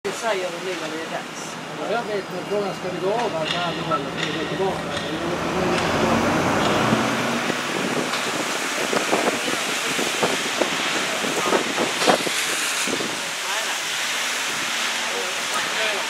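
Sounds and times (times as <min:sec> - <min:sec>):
wind and road noise: 0:00.4 - 0:16.0.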